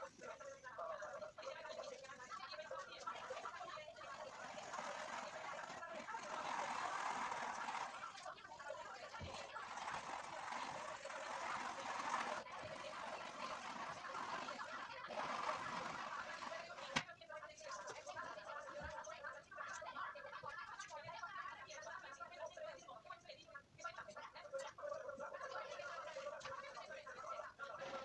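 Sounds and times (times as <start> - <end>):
indistinct background voices: 0.0 - 19.8.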